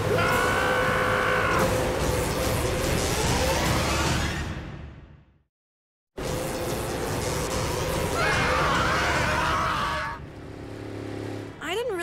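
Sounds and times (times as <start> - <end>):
cartoon engine whine: 6.2 - 10.2.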